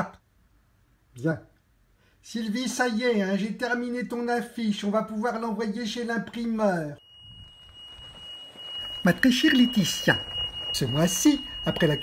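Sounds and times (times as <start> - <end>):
high-pitched electronic tone: 7.0 - 12.0
low rumble: 7.0 - 12.0.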